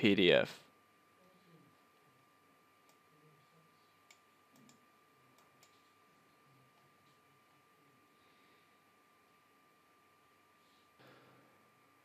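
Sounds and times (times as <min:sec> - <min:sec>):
faint high-pitched whine: 0:00.0 - 0:12.0
computer mouse clicks: 0:04.1 - 0:04.8.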